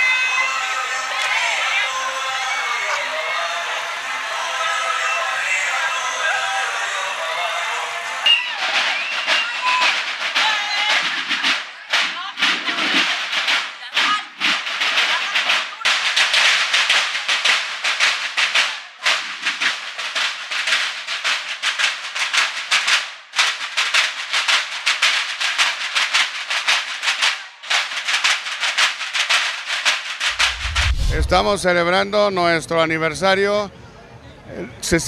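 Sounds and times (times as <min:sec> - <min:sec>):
marching snare drums: 0:08.3 - 0:31.6.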